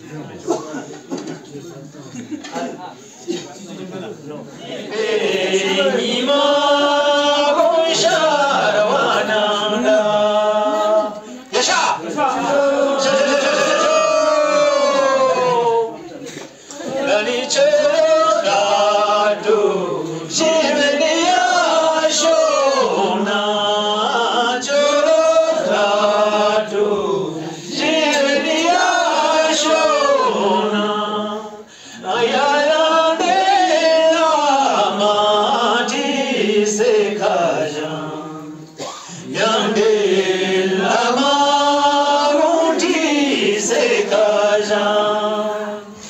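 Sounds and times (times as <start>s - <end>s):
group singing slow chant: 4.6s - 46.0s.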